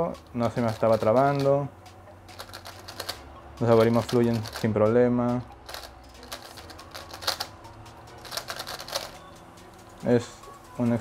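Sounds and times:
plastic puzzle clicking: 2.3 - 4.7, 5.7 - 7.5, 8.2 - 9.2.

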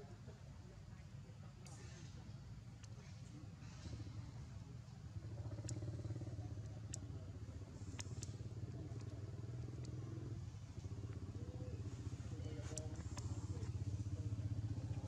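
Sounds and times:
motor engine running: 5.0 - 15.0.

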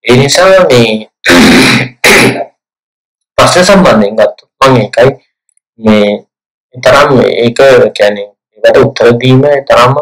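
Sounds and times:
man clearing his throat: 1.3 - 2.5.

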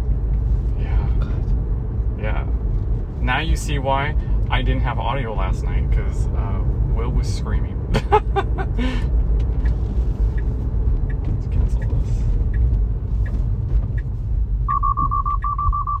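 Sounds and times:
low road rumble: 0.0 - 16.0
laughter: 7.9 - 8.8
short high warning beeps: 14.7 - 16.0.

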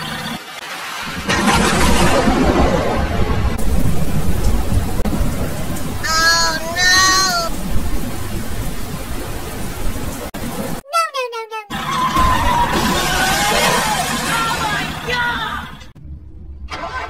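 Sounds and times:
heavy rain: 0.0 - 10.8, 11.7 - 15.9
low rumbling thunder: 1.0 - 10.2.

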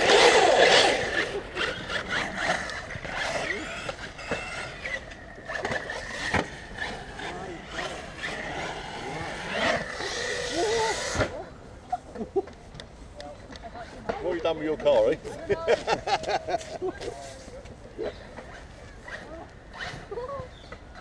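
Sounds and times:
rc car motor: 0.0 - 11.4.

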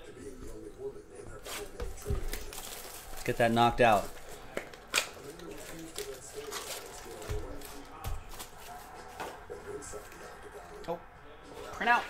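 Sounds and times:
foil packs rustling: 1.4 - 8.9.

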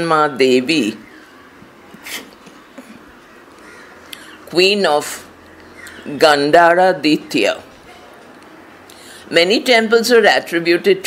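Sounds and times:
bird calling faintly: 1.0 - 4.5, 5.3 - 6.2.

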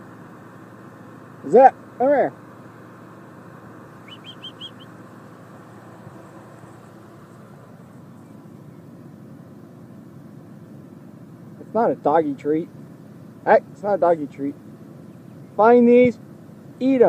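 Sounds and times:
engine humming: 0.0 - 17.0
short high chirps: 4.0 - 4.9.

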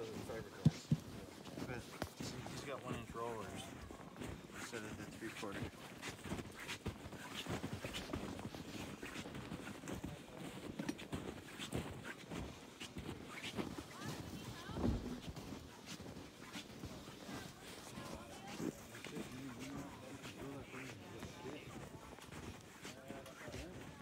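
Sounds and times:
footsteps crunching in snow: 0.0 - 24.0
people chattering: 17.0 - 24.0.

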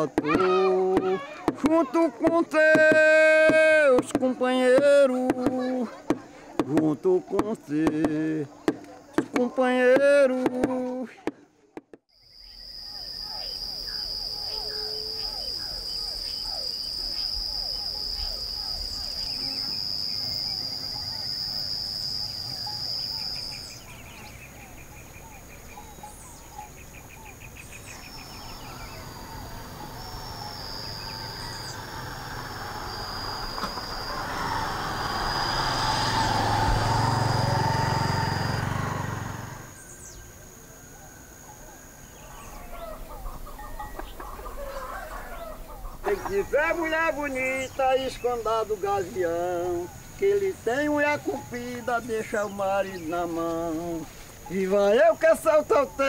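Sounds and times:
cricket chirps: 0.0 - 11.4, 12.1 - 56.0
high chirping calls: 12.1 - 56.0
high-pitched insect drone: 12.2 - 41.4.

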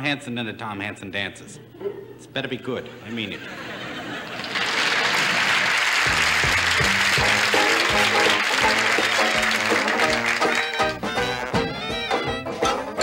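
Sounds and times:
audience applauding: 4.2 - 12.3
band playing dance tune: 5.9 - 13.0.

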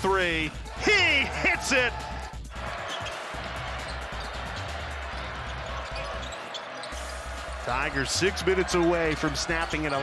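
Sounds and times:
crowd din: 0.6 - 10.0.

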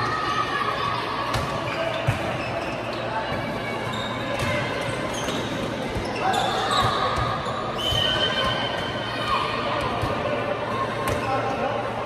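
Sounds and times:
shoe squeaks on hall floor: 1.6 - 9.1.

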